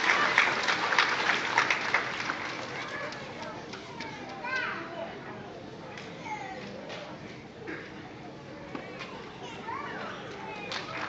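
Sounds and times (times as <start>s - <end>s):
children chattering: 1.8s - 11.0s.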